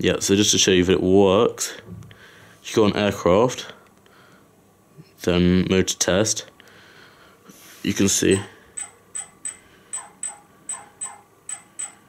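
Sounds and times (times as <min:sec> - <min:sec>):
drone motors ticking: 0:08.3 - 0:12.0.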